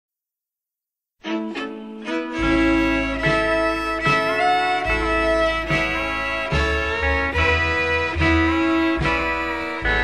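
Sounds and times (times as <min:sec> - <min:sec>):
fiddle melody: 0:01.2 - 0:10.0
guitar: 0:01.3 - 0:10.0
bass notes: 0:02.4 - 0:10.0.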